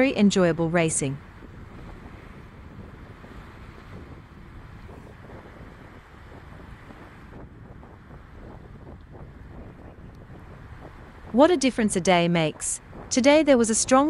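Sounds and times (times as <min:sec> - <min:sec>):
wind rushing over microphone: 0:00.0 - 0:14.0.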